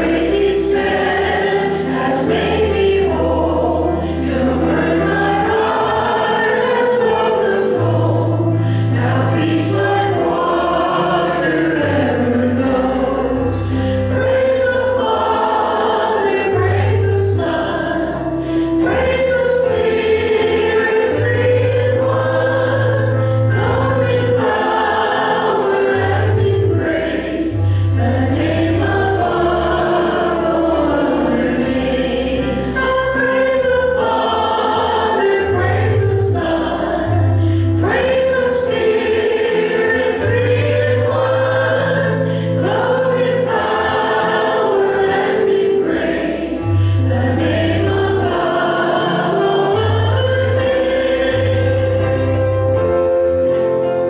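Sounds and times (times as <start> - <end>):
instrumental accompaniment: 0.0 - 54.0
worship team singing: 0.0 - 54.0.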